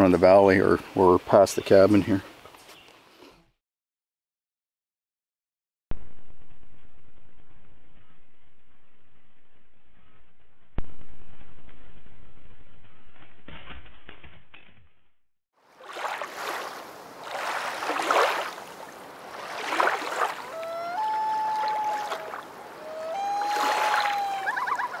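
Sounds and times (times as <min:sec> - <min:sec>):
water washing against shore: 0:15.7 - 0:25.0
bird calling: 0:19.4 - 0:25.0.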